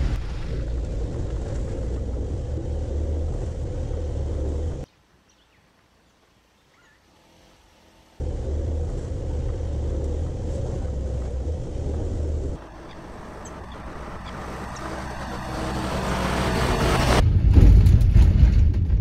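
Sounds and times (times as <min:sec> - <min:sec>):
van engine running: 0:08.1 - 0:17.2.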